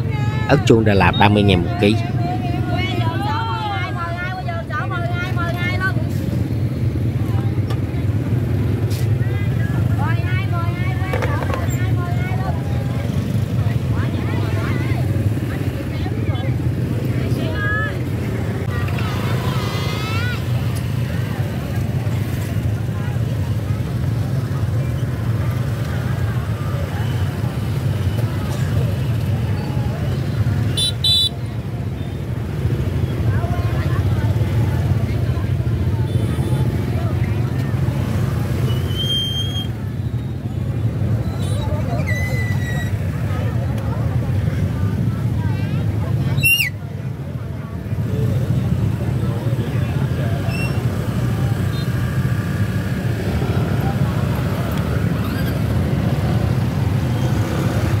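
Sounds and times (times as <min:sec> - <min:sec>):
motorbike engines humming: 0:00.0 - 0:58.0
vendors and shoppers talking: 0:00.0 - 0:58.0.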